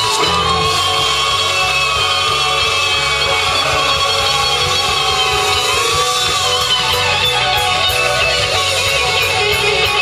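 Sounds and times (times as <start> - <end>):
bass line: 0.0 - 10.0
electric guitars: 0.0 - 10.0.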